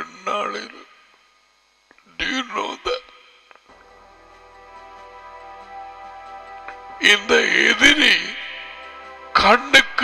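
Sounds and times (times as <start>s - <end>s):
soft background music: 3.7s - 10.0s
man speaking: 7.0s - 10.0s.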